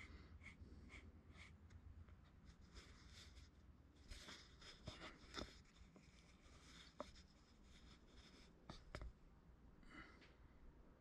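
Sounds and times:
paintbrush scratching: 0.0s - 9.0s.

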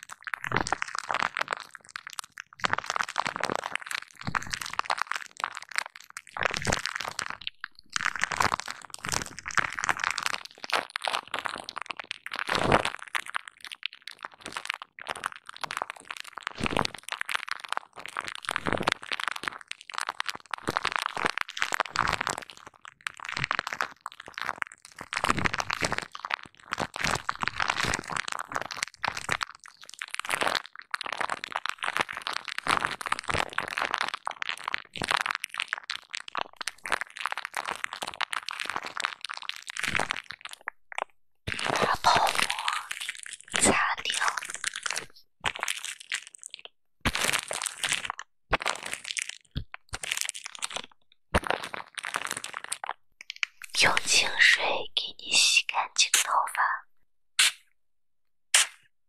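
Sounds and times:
bubble wrap crinkling: 0.0s - 54.4s.

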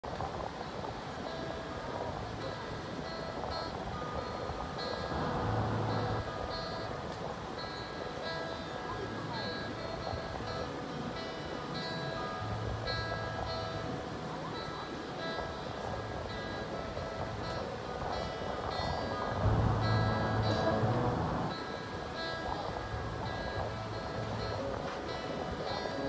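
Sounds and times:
amplified acoustic guitar picking: 16.4s - 26.0s.

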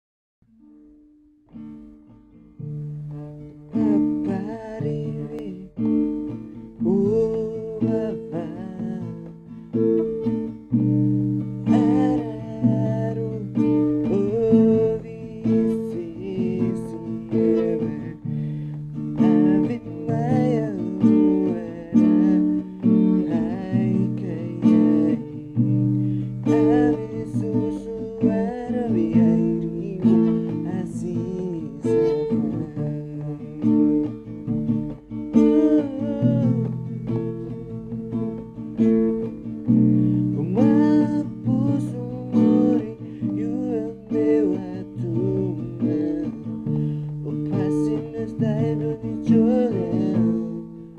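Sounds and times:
acoustic guitar strumming: 0.4s - 50.9s
man singing: 3.1s - 10.2s, 11.6s - 34.4s, 35.3s - 39.3s, 40.2s - 50.9s.

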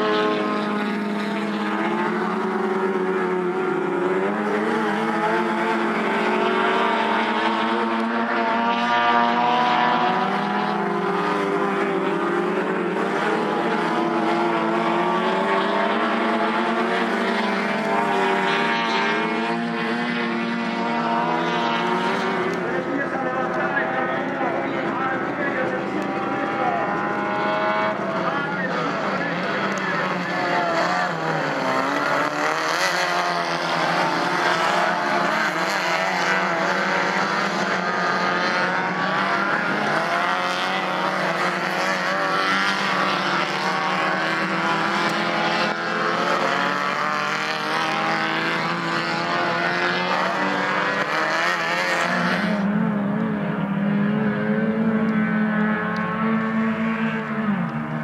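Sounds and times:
low engine drone: 0.0s - 51.9s
race car engines racing past: 0.0s - 58.0s.

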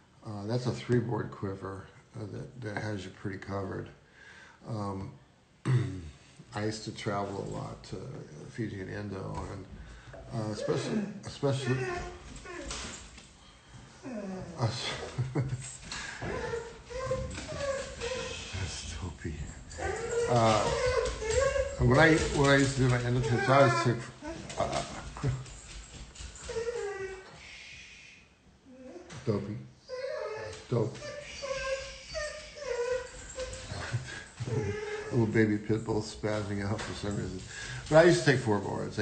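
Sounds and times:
dog whining and yelping: 10.4s - 13.1s, 14.0s - 15.1s, 16.0s - 18.8s, 19.7s - 27.4s, 29.8s - 35.3s.

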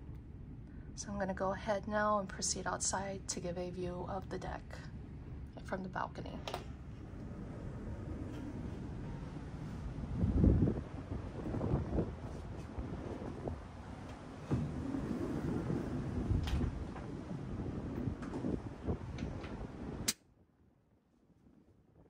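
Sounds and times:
wind buffeting microphone: 6.6s - 20.1s.

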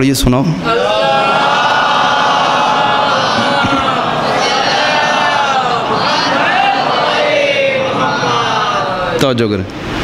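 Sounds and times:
congregation chanting in unison: 0.6s - 9.2s.

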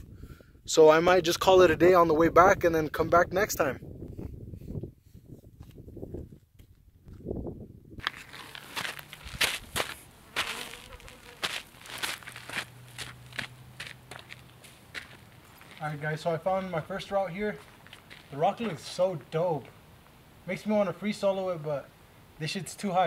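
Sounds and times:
low gusty rumble: 0.0s - 8.2s
footsteps crunching on gritty ground: 8.0s - 19.2s
insect buzzing: 9.2s - 12.3s.

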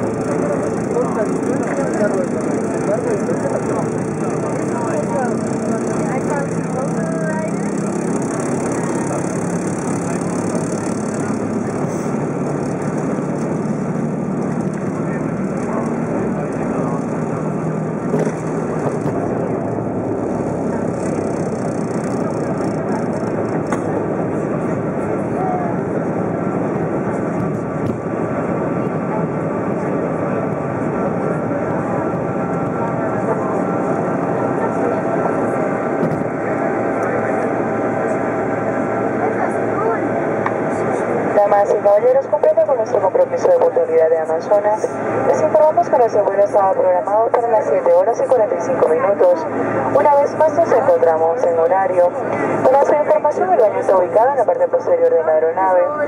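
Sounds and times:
airliner engines roaring in cabin: 0.0s - 56.0s.

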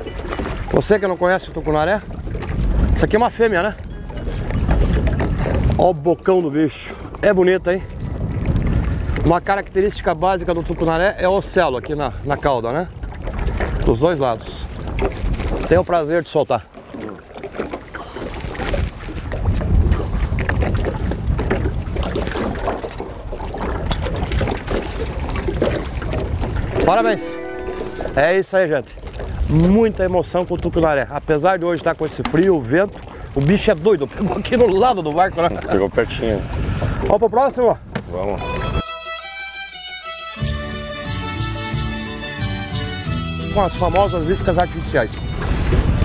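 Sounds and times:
wind buffeting microphone: 0.0s - 16.3s, 17.0s - 38.8s, 43.6s - 46.0s
water lapping against boat: 0.0s - 38.8s, 43.6s - 46.0s.

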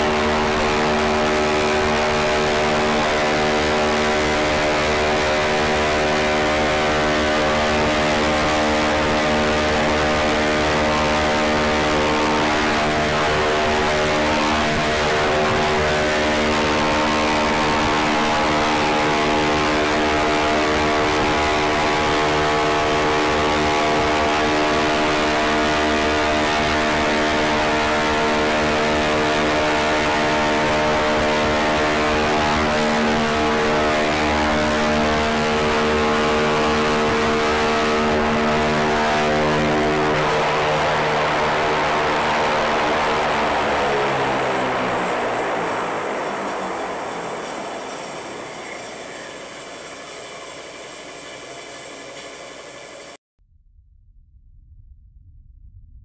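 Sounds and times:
helicopter rotors humming: 0.0s - 53.2s.

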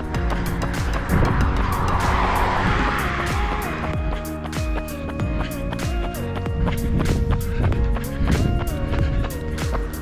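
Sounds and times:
car passing: 0.0s - 5.1s
music with steady beat: 0.0s - 10.0s.

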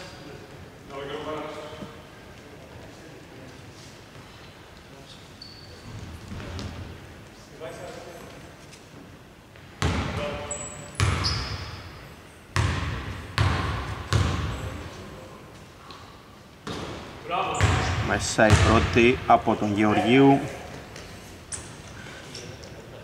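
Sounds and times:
basketball bouncing on hardwood: 12.6s - 14.6s, 17.6s - 18.9s.

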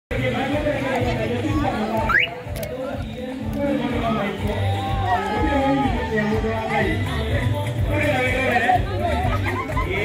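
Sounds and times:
women chattering: 0.6s - 10.0s.

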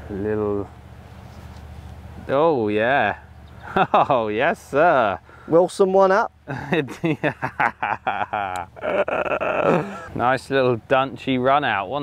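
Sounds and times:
man laughing: 3.6s - 4.3s, 6.5s - 10.2s.

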